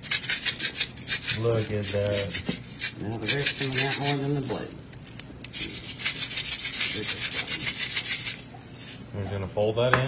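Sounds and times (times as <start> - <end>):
plastic shaker rattling: 0.0 - 9.1.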